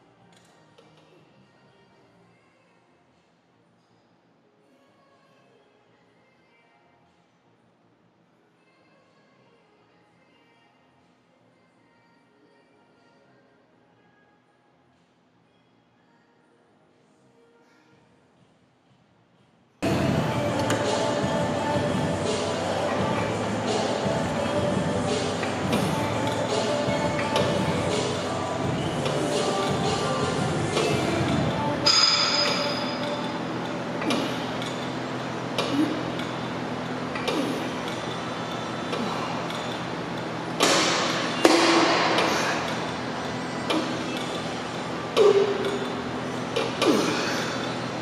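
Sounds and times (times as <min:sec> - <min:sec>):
music: 0:00.0 - 0:34.8.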